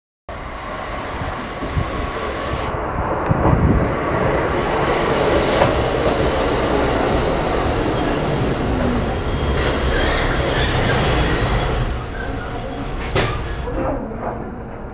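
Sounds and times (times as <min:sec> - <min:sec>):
train wheels rumbling on rails: 0:00.3 - 0:14.9
high wheel squeal: 0:07.9 - 0:13.7.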